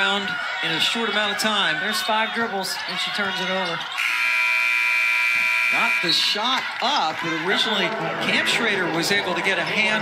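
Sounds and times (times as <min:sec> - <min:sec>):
arena buzzer horn: 0:04.0 - 0:06.3.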